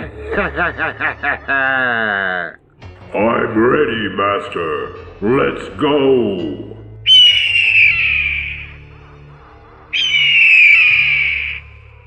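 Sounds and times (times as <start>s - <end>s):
low background music: 0.0s - 12.0s
high screeching cry: 7.1s - 8.8s, 10.0s - 11.8s.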